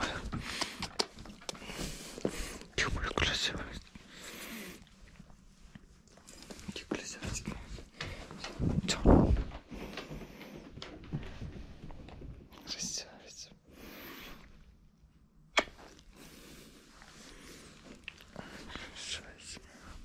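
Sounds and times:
man whispering and murmuring: 0:00.0 - 0:04.0, 0:06.5 - 0:10.0, 0:12.5 - 0:13.6, 0:18.2 - 0:20.0.

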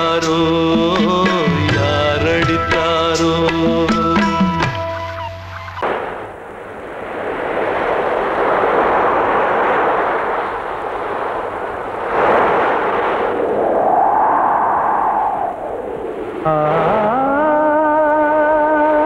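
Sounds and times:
ocean waves breaking: 0:05.7 - 0:19.0
faint rising and falling tone: 0:13.3 - 0:19.0.

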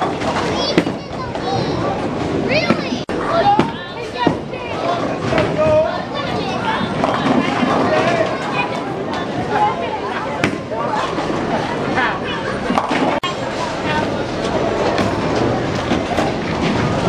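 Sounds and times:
children's high voices: 0:00.0 - 0:05.2, 0:05.8 - 0:12.6
adults chattering: 0:00.0 - 0:17.0.

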